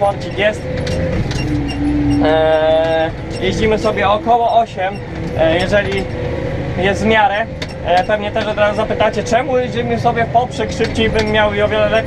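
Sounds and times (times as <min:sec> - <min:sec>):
tractor engine under load: 0:00.0 - 0:12.0
person humming long notes: 0:01.5 - 0:03.3.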